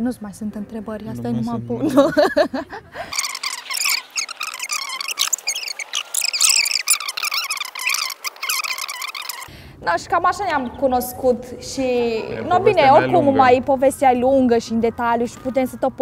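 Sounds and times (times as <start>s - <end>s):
high chirping animal calls: 3.0s - 9.5s.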